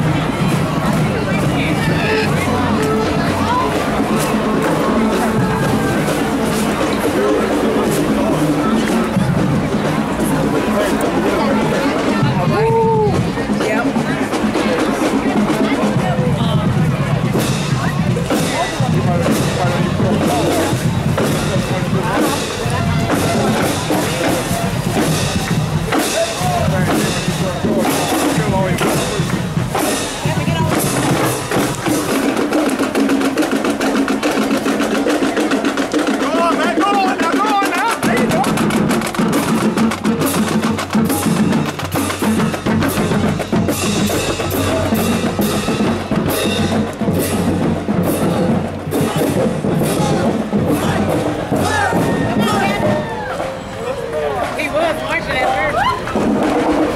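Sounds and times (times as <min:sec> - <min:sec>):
drumline snare and bass drums: 0:00.0 - 0:56.9.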